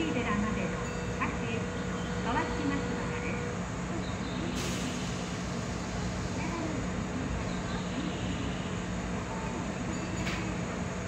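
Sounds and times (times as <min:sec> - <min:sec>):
station announcement voice: 0:00.0 - 0:05.4, 0:06.2 - 0:11.0
electric train equipment humming: 0:00.0 - 0:11.0.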